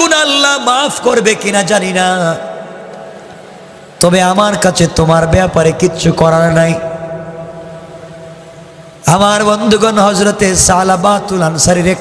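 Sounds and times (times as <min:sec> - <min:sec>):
sung note through loudspeakers: 0:00.0 - 0:12.0.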